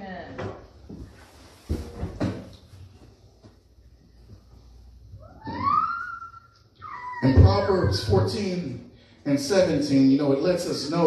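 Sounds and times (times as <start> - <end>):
young child squealing: 5.2 - 8.1.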